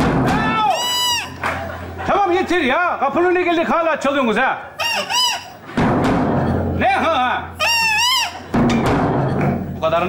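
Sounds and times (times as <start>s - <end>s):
bass drum booming: 0.0s - 0.6s, 5.8s - 7.2s, 8.5s - 9.7s.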